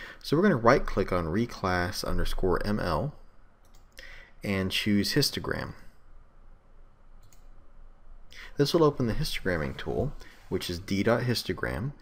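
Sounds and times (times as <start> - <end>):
faint computer mouse click: 3.6 - 3.9, 7.2 - 7.5.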